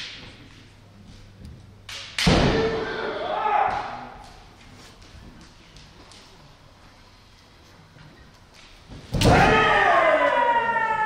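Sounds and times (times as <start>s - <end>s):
loud crack of strike: 2.0s - 2.8s
person shouting: 2.6s - 4.1s.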